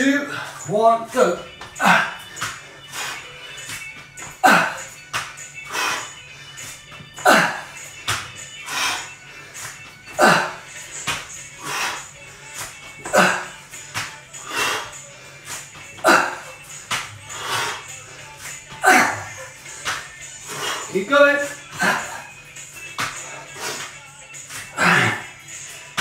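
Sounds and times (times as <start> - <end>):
man breathing hard: 0.2 - 0.7, 1.5 - 26.0
hands and feet landing on tiles: 1.5 - 2.6, 3.6 - 5.5, 6.6 - 8.4, 11.0 - 11.4, 12.5 - 14.3, 15.4 - 17.3, 18.4 - 20.2, 21.6 - 25.2.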